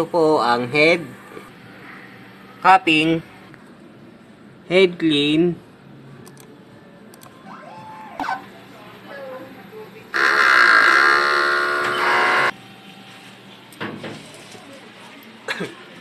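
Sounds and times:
printer motor whine: 0:10.1 - 0:13.3
short tone: 0:10.2 - 0:12.5.

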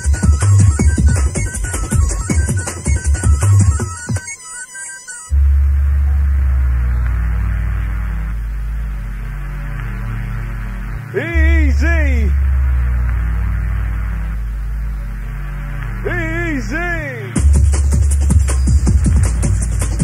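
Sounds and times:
heavy sub-bass drone: 0:00.0 - 0:03.8, 0:05.3 - 0:20.0
soft synth pad: 0:04.3 - 0:20.0
sung vocal sample sliding: 0:05.3 - 0:17.4.

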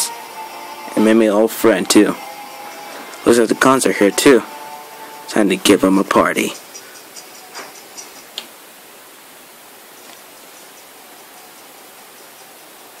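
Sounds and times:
faint room tone hiss: 0:00.0 - 0:13.0.

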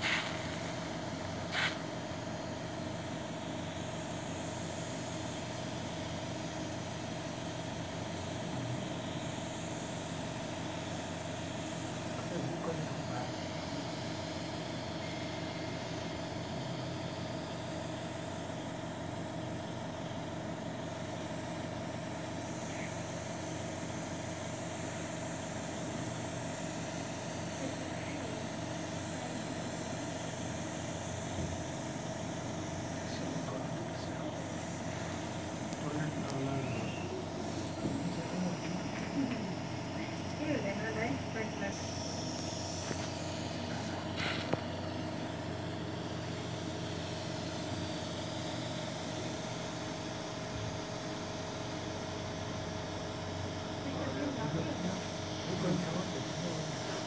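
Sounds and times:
machine hum: 0:00.0 - 0:57.0.

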